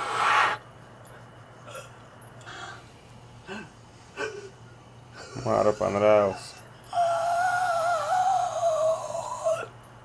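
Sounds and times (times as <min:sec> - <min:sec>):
zombie wail: 0:07.0 - 0:09.7.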